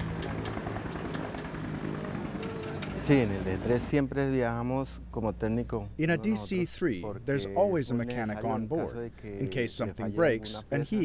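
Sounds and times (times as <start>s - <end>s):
propeller aircraft engine running: 0.0s - 3.8s.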